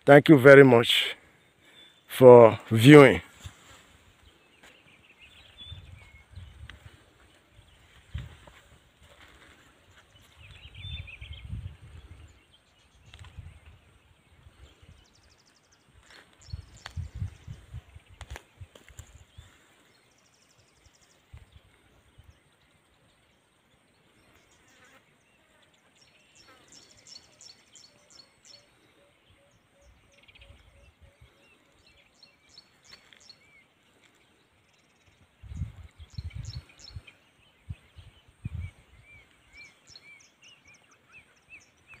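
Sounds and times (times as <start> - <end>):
bird chirps and trills: 34.6 - 42.0.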